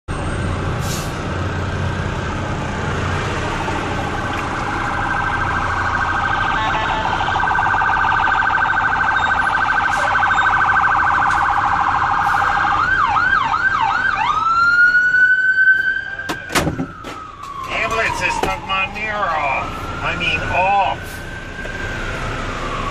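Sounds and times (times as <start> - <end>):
ambulance siren: 3.6 - 22.9.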